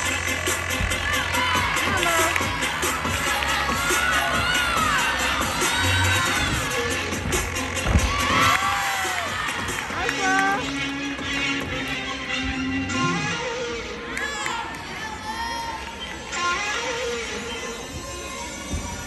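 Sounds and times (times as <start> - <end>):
people cheering and shouting: 0.0 - 10.7, 11.5 - 19.0
music from speakers: 0.0 - 14.1
thump: 7.3 - 8.5.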